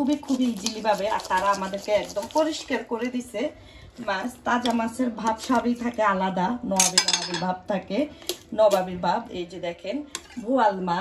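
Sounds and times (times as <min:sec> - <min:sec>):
people talking: 0:00.0 - 0:11.0
knife clattering on metal tray: 0:06.8 - 0:07.5.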